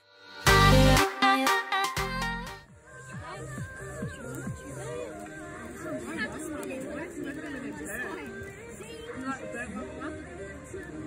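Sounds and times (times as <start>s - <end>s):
children chattering: 3.0s - 11.0s.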